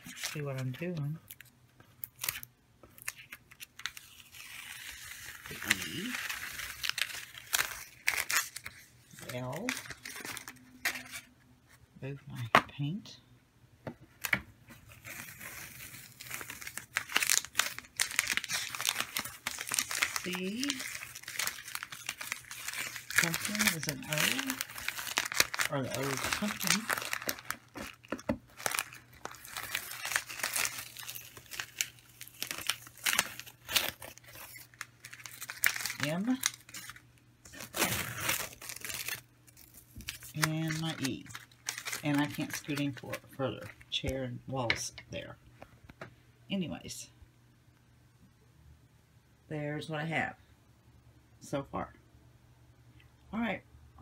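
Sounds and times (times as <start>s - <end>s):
vinyl crinkling and crackling: 14.1s - 44.9s.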